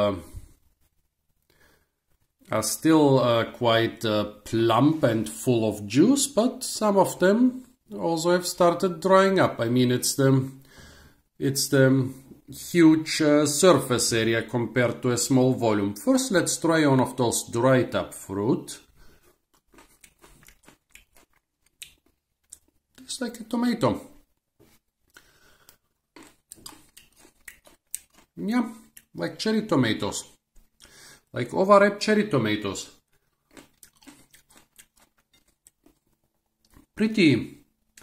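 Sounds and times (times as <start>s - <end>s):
chewing small tomato: 18.8s - 23.1s, 25.0s - 29.2s, 32.9s - 37.0s.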